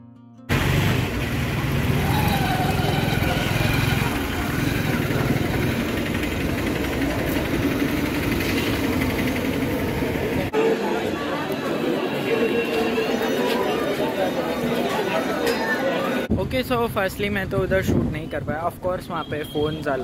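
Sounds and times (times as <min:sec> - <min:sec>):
vehicle engines running: 0:00.5 - 0:15.0
people's voices: 0:01.9 - 0:20.0.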